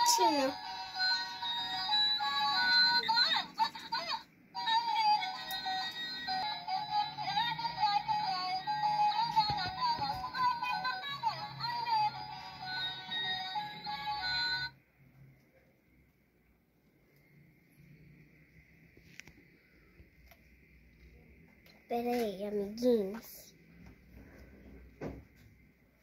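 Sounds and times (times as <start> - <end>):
synthetic singing over simple melody: 4.6 - 14.7.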